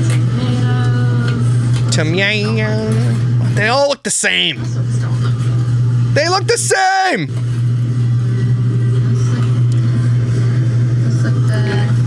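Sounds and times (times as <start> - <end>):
loud steady low hum: 0.0 - 12.0.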